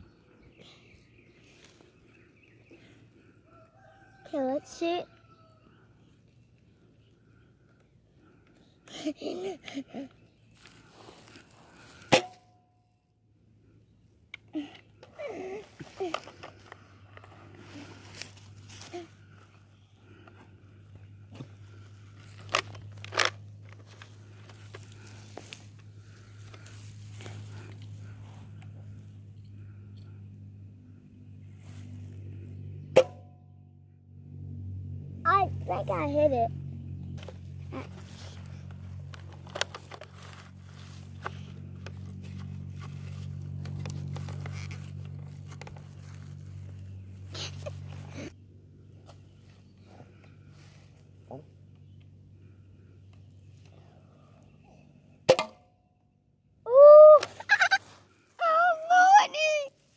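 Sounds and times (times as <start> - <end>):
rustling of handling: 15.0 - 30.2, 37.2 - 48.3.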